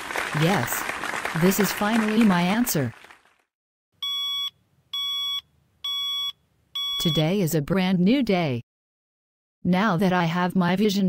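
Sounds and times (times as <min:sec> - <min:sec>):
alarm clock beeping: 0:04.0 - 0:07.3.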